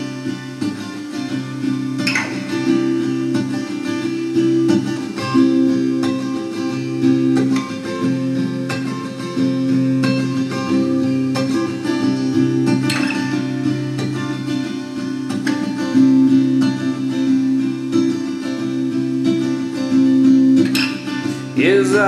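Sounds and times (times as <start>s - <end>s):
solo guitar chords ringing: 0.0s - 22.0s.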